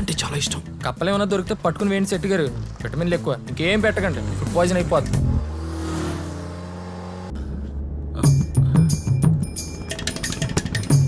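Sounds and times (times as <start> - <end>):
car engine accelerating: 2.5 - 8.3.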